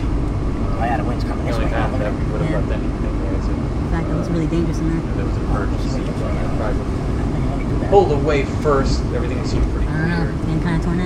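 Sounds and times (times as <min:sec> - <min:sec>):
voices talking: 0:00.0 - 0:11.0
wind buffeting car: 0:00.0 - 0:11.0.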